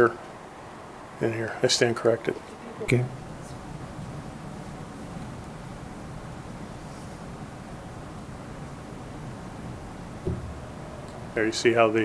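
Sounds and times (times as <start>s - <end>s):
faint hiss: 0.0s - 12.0s
low room rumble: 2.9s - 12.0s.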